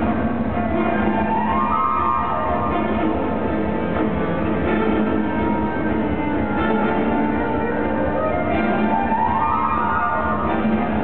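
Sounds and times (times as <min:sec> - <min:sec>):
orchestra playing dance music: 0:00.0 - 0:11.0.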